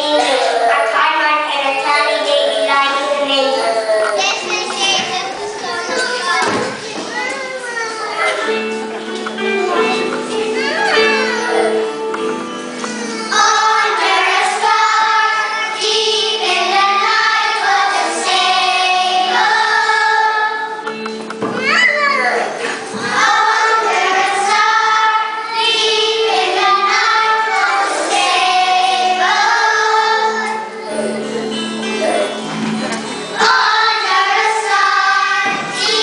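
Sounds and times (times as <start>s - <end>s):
children singing together: 0.0s - 36.0s
instrumental accompaniment: 4.0s - 36.0s.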